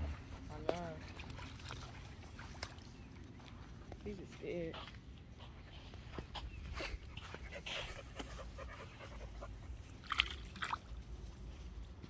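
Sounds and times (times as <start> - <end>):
low steady rumble: 0.0 - 12.0
shallow water splashing: 0.8 - 3.2, 10.0 - 11.1.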